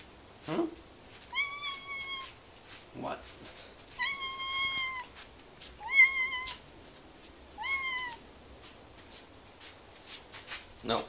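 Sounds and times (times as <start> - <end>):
cat meowing: 1.3 - 2.4, 4.0 - 5.2, 5.8 - 6.6, 7.6 - 8.2.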